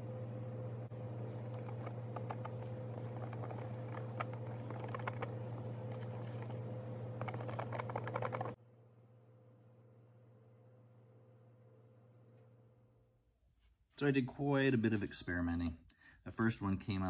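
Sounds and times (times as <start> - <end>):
low hum: 0.0 - 13.4
stir stick scraping plastic cup: 0.9 - 8.6.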